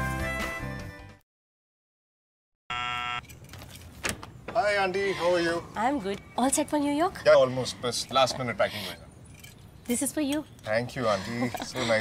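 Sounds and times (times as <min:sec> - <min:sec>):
electric doorbell buzz: 0:02.7 - 0:03.3.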